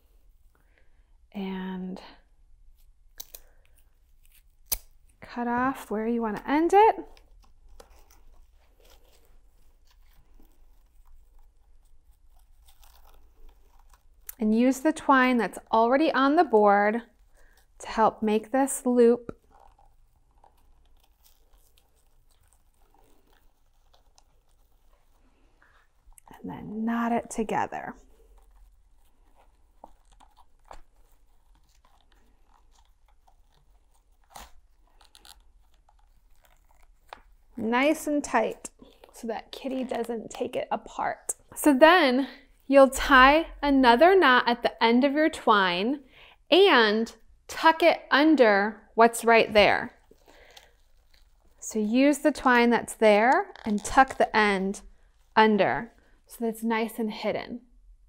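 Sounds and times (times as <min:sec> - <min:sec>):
twine rustling and scratching: 0:03.8 - 0:41.6, 0:49.2 - 0:56.3.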